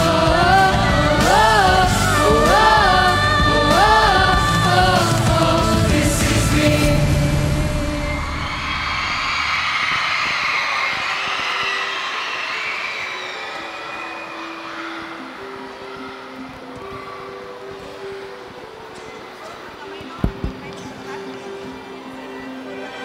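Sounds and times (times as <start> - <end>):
audience cheering and applauding: 7.8 - 15.4.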